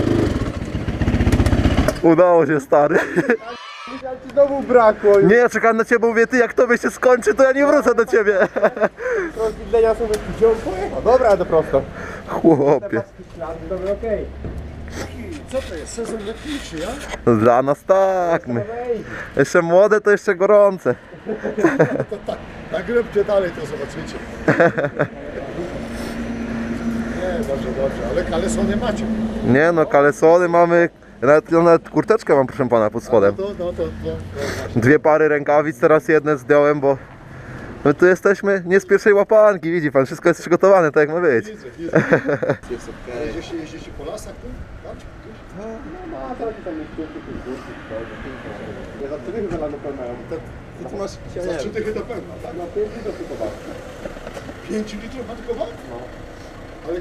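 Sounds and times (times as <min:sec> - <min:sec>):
vehicle engine rumble: 0:00.0 - 0:03.0, 0:07.1 - 0:19.4, 0:21.0 - 0:35.0, 0:41.4 - 0:57.0
men talking: 0:02.0 - 0:57.0.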